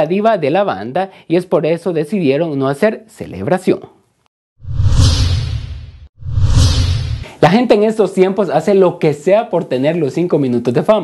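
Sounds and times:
transition whoosh: 4.6s - 7.3s.

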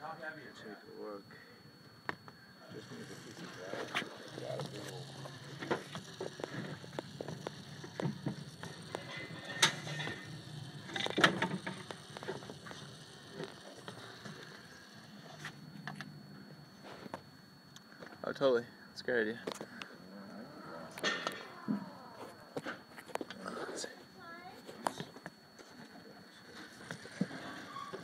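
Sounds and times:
electric gear motor humming: 1.0s - 28.0s
wooden gears clicking and knocking: 3.4s - 14.8s.

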